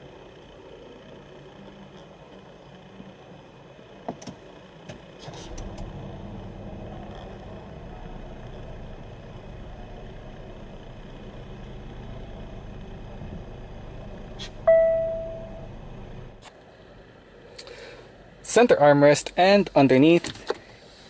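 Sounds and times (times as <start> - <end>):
car engine starting and idling: 0.0 - 21.0.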